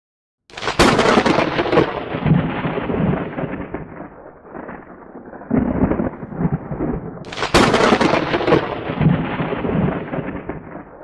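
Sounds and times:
rain falling: 0:00.5 - 0:03.8, 0:05.5 - 0:11.0
thunder rumbling: 0:00.5 - 0:11.0.

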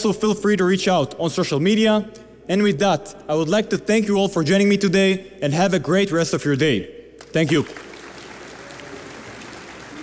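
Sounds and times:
audience applauding: 0:07.2 - 0:10.0.

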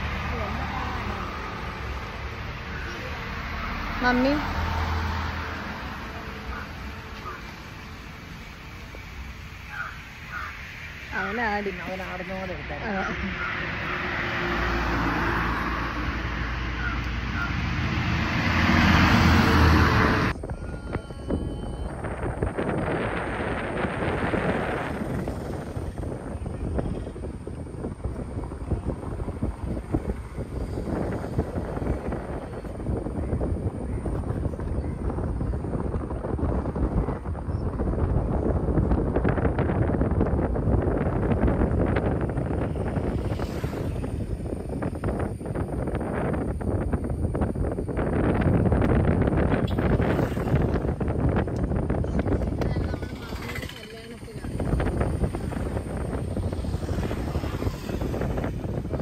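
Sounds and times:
vehicle road noise: 0:00.0 - 0:59.0
wind buffeting microphone: 0:00.0 - 0:59.0.

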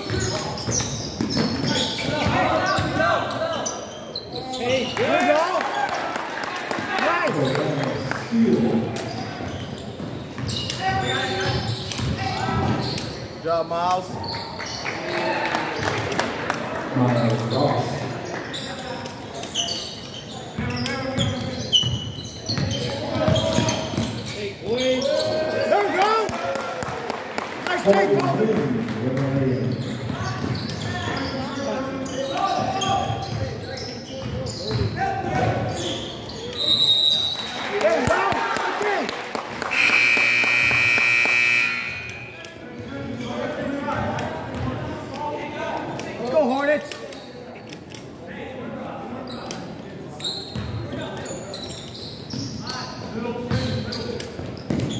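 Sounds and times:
sneakers squeaking on hardwood: 0:00.0 - 0:05.0, 0:09.0 - 0:13.2, 0:17.2 - 0:25.3, 0:29.4 - 0:36.8, 0:50.2 - 0:54.9
voices of players and spectators: 0:00.0 - 0:54.9
buzzer tone: 0:39.7 - 0:42.4.

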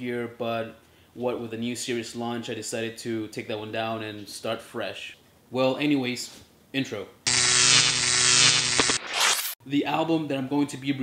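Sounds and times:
distorted electric buzzing drone: 0:07.3 - 0:09.6
crackling clicks: 0:07.7 - 0:09.6.

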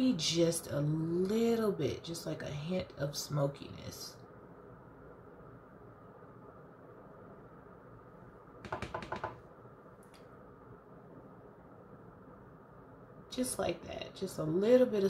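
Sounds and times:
makeup tools clicking and tapping: 0:08.6 - 0:09.4.

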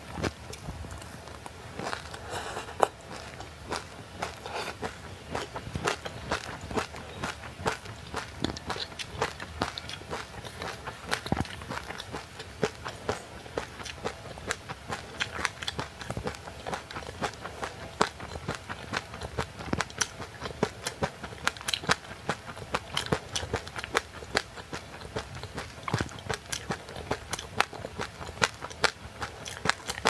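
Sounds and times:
crunching frozen ice treat: 0:00.0 - 0:30.0.

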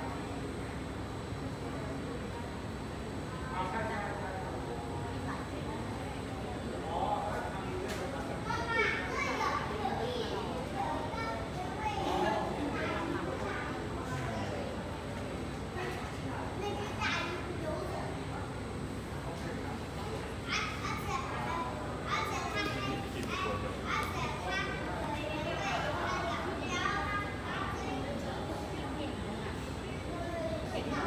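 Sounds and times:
children chattering: 0:01.5 - 0:31.0.

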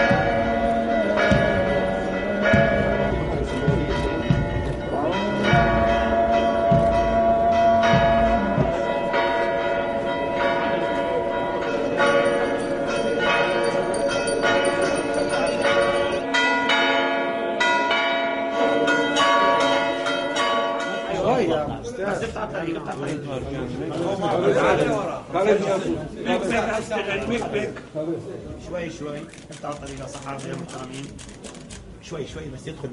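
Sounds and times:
church bells pealing: 0:00.0 - 0:21.8.

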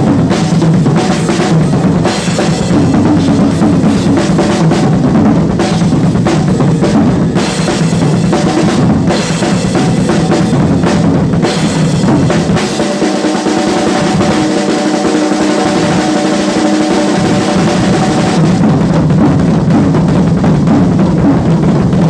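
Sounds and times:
cymbals: 0:00.0 - 0:19.6
snare and bass drum playing fast: 0:00.0 - 0:22.0.

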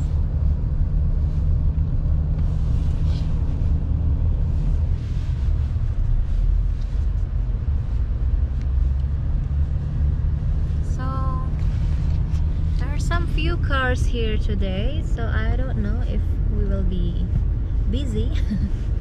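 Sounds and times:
car engine and road rumble: 0:00.0 - 0:19.0.

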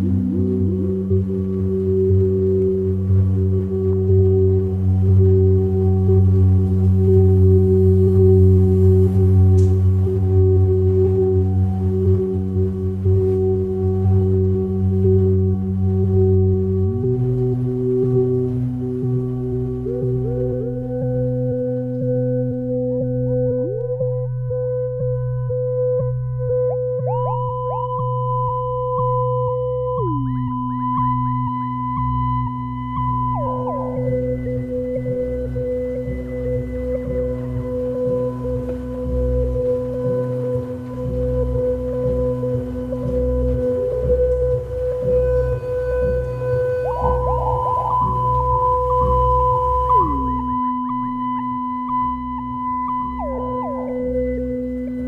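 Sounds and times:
electronic sine tone music: 0:00.0 - 0:55.0
low uneven rumble: 0:00.0 - 0:55.0.

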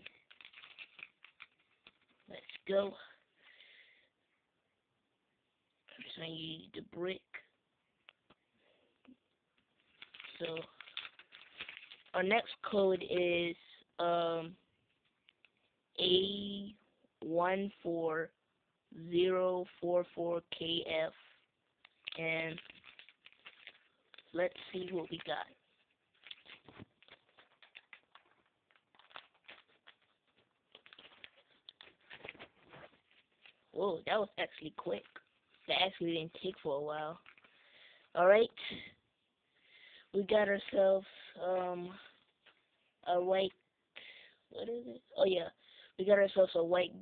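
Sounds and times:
blind pack rustling: 0:00.0 - 0:02.6, 0:09.8 - 0:12.2, 0:21.9 - 0:33.7
plastic bag crinkling: 0:00.0 - 0:02.6, 0:09.8 - 0:12.2, 0:21.8 - 0:33.8
plastic pieces clicking: 0:00.0 - 0:02.6, 0:09.8 - 0:12.2, 0:21.8 - 0:25.5, 0:26.1 - 0:32.5.

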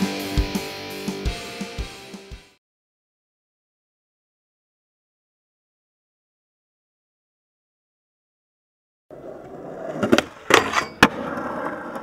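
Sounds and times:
skateboard clacks: 0:09.1 - 0:12.0
skateboard wheels rolling: 0:09.1 - 0:12.0.

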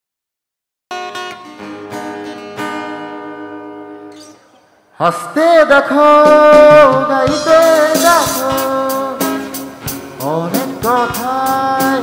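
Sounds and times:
acoustic guitar chords ringing: 0:00.9 - 0:12.0.

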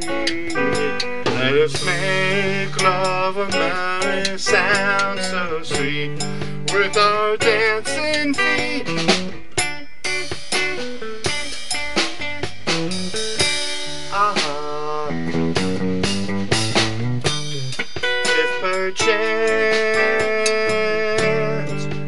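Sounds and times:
bass: 0:00.0 - 0:22.0
drum kit: 0:00.0 - 0:22.0
electric guitar: 0:00.0 - 0:22.0.

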